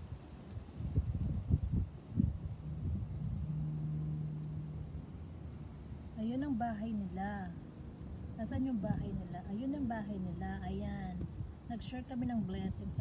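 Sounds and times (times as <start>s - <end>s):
steady low hum: 0.0s - 13.0s
wind buffeting microphone: 0.0s - 13.0s.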